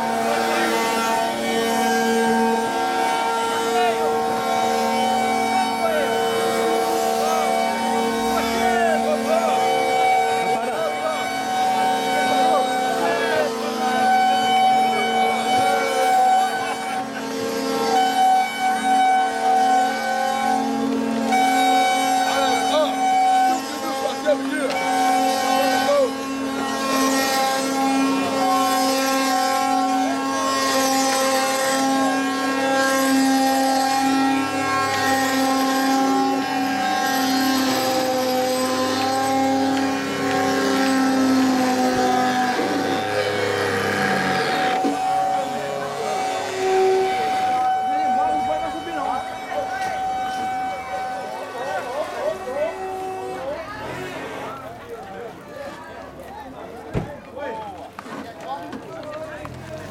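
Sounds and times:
people's voices: 0.0 - 59.9
wooden cart axles droning: 0.0 - 59.9.

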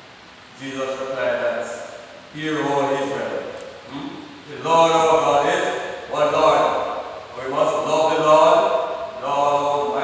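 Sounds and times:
man preaching into microphone: 0.6 - 10.0.

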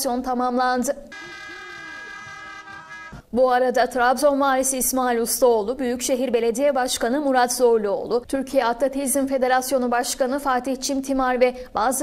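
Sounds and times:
steady horn-like tone: 1.1 - 3.2.

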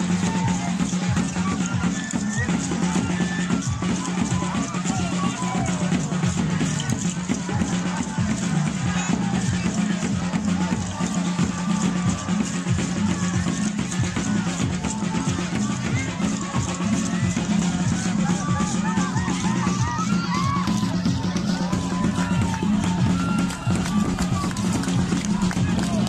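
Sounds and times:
steady drum beat: 0.0 - 26.0.

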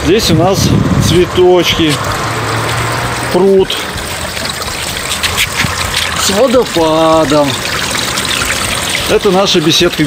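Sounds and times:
water trickling into pond: 0.0 - 10.0.

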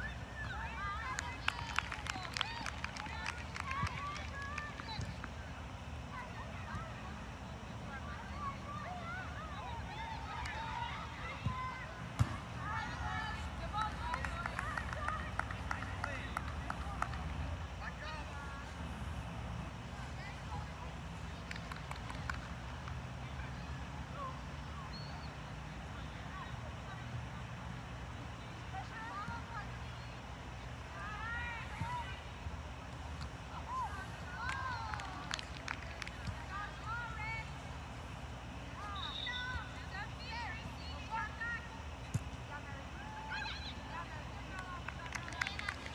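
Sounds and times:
women calling and shouting: 8.0 - 18.7.

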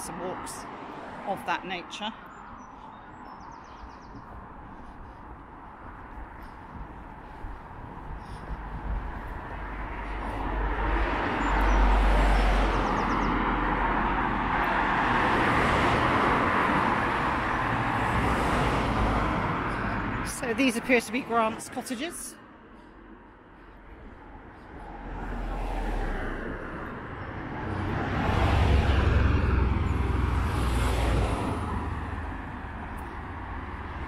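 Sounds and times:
cars passing by: 0.0 - 34.0
deep vehicle rumble: 2.2 - 21.4, 22.4 - 34.0
tyre and engine noise: 2.8 - 34.0.

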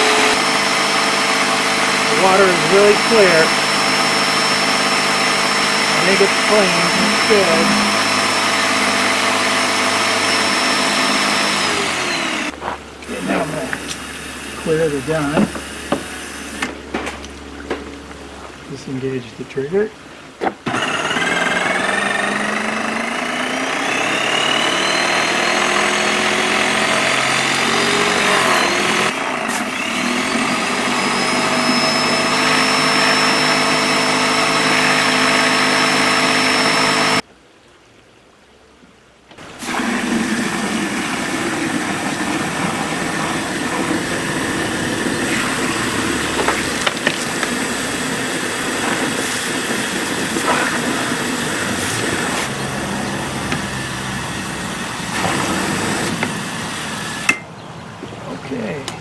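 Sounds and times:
water jet hissing: 0.0 - 16.8, 39.4 - 57.4
electric pump whining: 0.0 - 37.3, 39.4 - 57.5.

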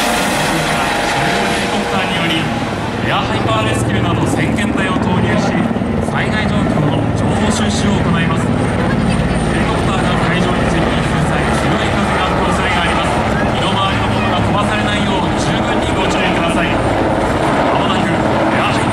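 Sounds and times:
helicopter rotor and turbine engine: 0.0 - 18.9.

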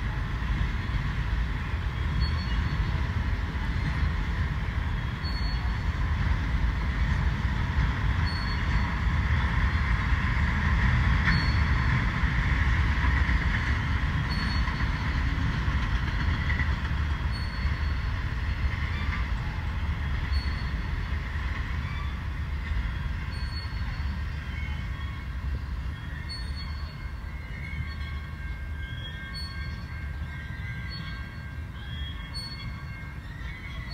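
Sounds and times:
train wheels rumbling on rail: 0.0 - 33.9
wheels squealing: 11.1 - 12.0, 13.1 - 33.9.

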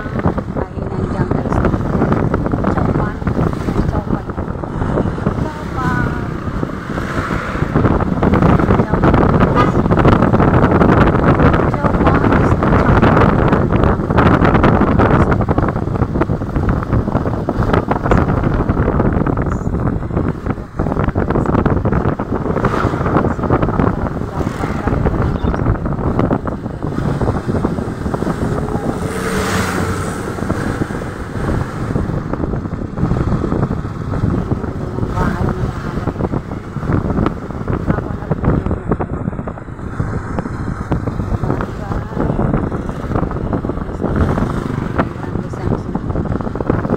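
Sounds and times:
small vehicle engine and road noise: 0.0 - 46.9
wind rushing over microphone: 0.0 - 46.9.

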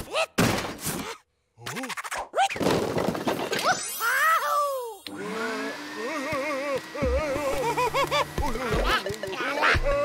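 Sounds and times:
high cartoon-voice cry: 3.6 - 5.0, 6.0 - 10.0
vacuum cleaner motor whining: 5.1 - 10.0.

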